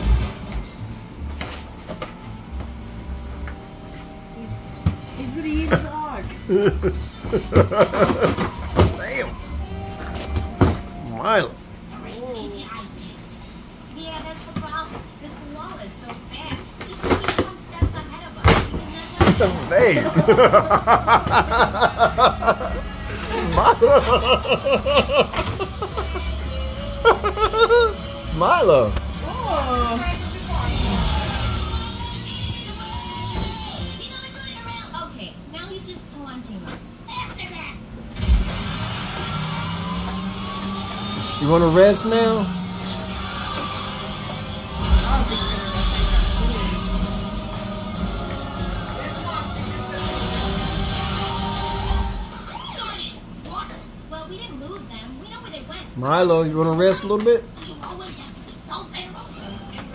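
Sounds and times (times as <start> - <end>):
television voice: 3.1 - 38.5, 39.6 - 59.9.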